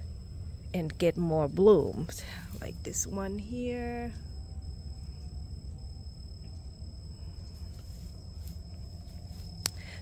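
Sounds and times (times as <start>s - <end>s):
high-pitched insect drone: 0.0s - 10.0s
steady low rumble: 0.0s - 10.0s.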